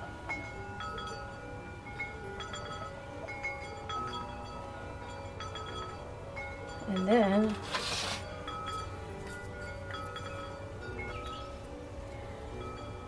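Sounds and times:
wind chimes ringing: 0.0s - 13.0s.

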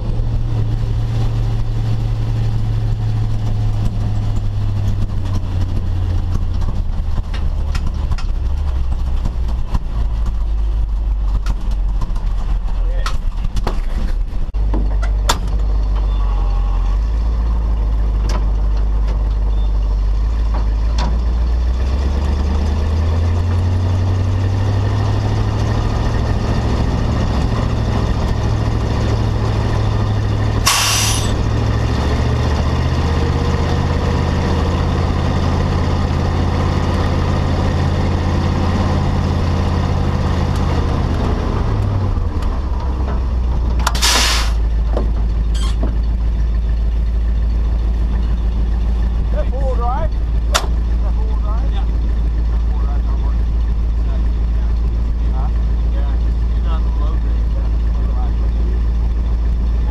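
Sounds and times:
truck engine running: 0.0s - 59.9s
air brake hisses: 30.7s - 31.4s, 43.9s - 44.6s.

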